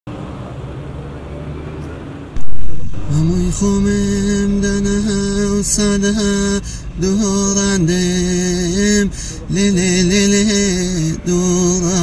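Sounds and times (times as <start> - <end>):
low rumble: 2.4 - 12.0.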